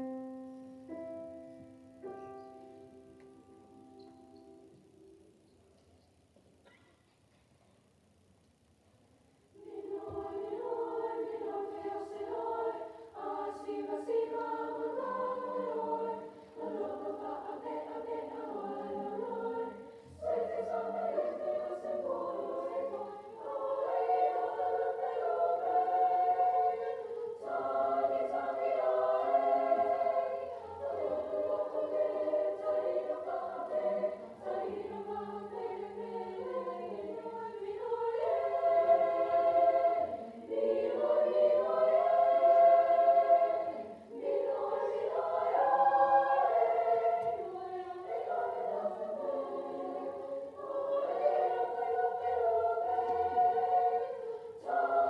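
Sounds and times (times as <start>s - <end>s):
choir singing in parts: 9.6s - 55.0s.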